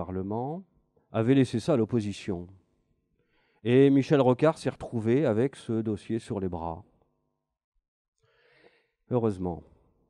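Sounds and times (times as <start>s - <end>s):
faint intake of breath: 3.2s - 3.6s, 8.2s - 9.0s.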